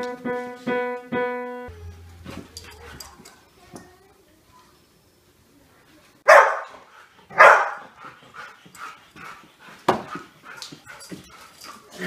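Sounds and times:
dog barking: 6.2s - 8.0s.

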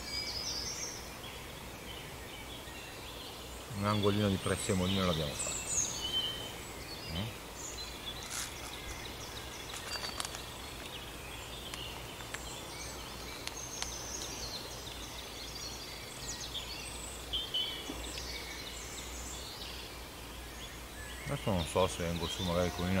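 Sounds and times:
small birds chirping: 0.0s - 23.0s.

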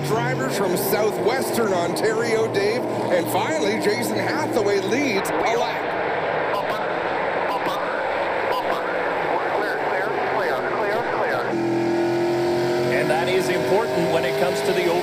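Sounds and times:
onboard car engine accelerating: 0.0s - 15.0s
race cars sweeping past: 0.0s - 15.0s.

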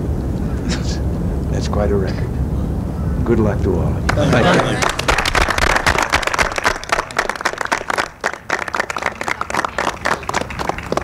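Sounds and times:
people applauding: 4.1s - 11.0s.

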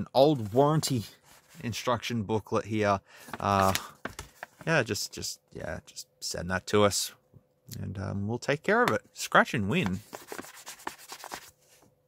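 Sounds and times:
fingernail scratching paper card: 10.0s - 11.5s.

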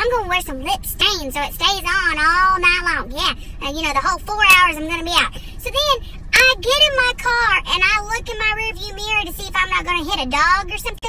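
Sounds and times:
woman speaking in high pitch: 0.0s - 11.0s.

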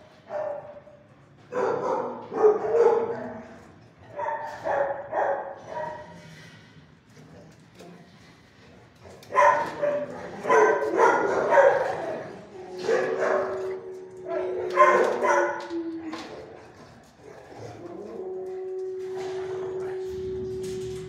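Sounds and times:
dogs barking: 0.0s - 6.2s, 9.1s - 20.0s.

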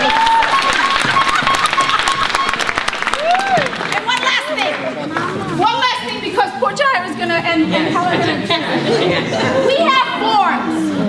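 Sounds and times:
audience applause in echoing hall: 0.0s - 5.5s.

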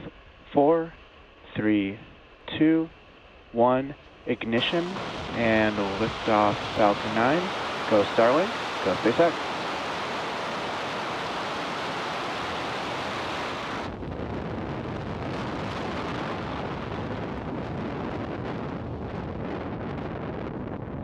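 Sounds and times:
rocket engines roaring: 0.0s - 20.6s.

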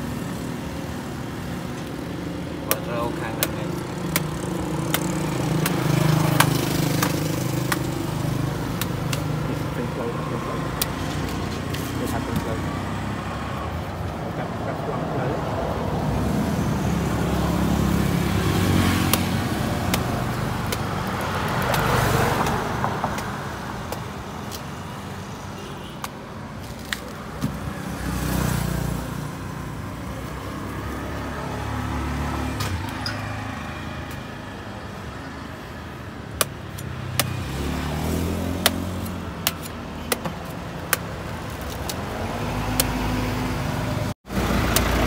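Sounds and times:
vehicles passing: 0.0s - 45.0s
voices talking: 2.5s - 16.0s.

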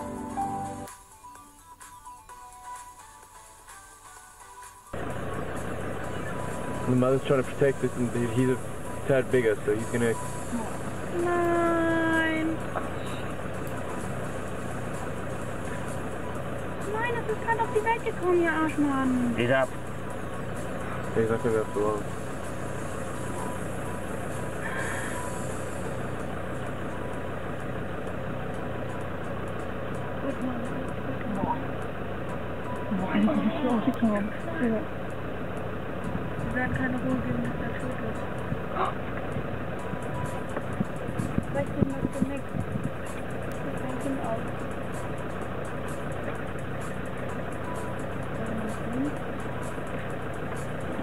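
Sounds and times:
engine humming: 0.0s - 0.9s, 3.0s - 51.0s
steady rumbling noise: 4.9s - 51.0s
man's voice: 6.8s - 10.2s, 21.1s - 22.1s.

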